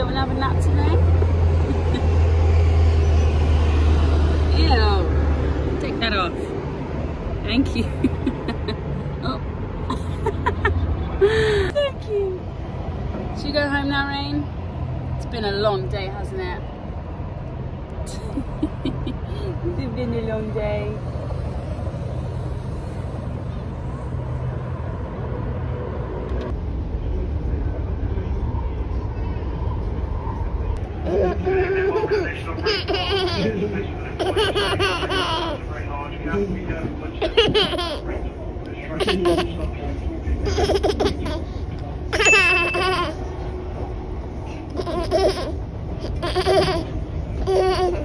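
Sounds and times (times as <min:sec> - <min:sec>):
road traffic rumble: 0:00.0 - 0:48.0.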